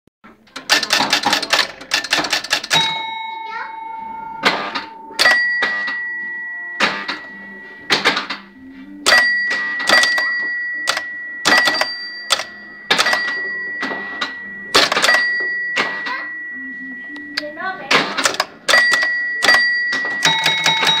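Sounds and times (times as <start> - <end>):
rapid mechanical relay clacks: 0.4 - 2.9, 18.2 - 21.0
high score bell ringing: 0.7 - 21.0
low score bell ringing: 2.6 - 17.8, 18.6 - 21.0.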